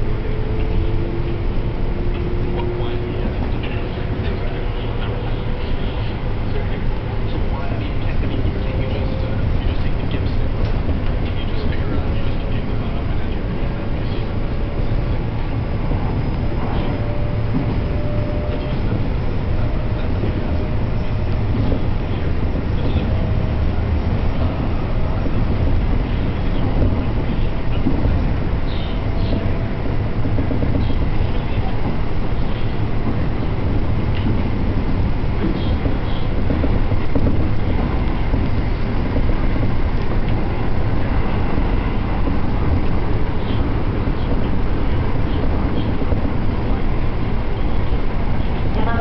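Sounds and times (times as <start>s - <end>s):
train rumbling inside carriage: 0.0s - 49.0s.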